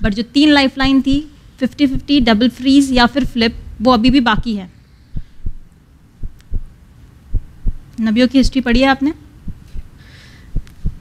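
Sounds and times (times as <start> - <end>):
steady low hum: 0.0 - 11.0
heartbeat-like double thump: 0.8 - 1.3, 1.9 - 2.4, 3.0 - 7.9, 9.4 - 9.9, 10.5 - 11.0.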